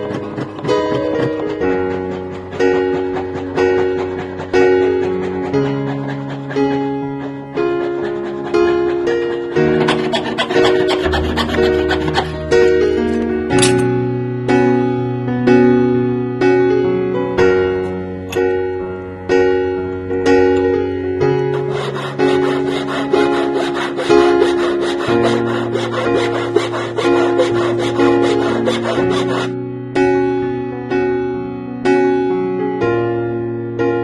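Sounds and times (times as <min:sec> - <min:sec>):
saw rasping through metal: 0:00.0 - 0:13.8, 0:21.2 - 0:29.6
background music: 0:00.0 - 0:34.0.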